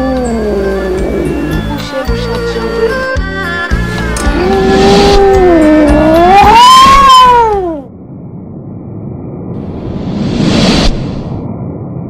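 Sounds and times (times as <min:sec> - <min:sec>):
low rumble: 0:04.1 - 0:12.0
long wailing tone: 0:04.2 - 0:07.9.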